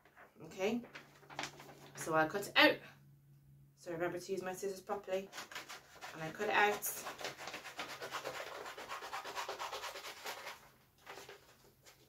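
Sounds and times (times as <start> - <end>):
paper rustling: 0.0 - 2.1, 5.3 - 8.7, 9.9 - 12.0
scissors snipping paper: 5.3 - 10.6.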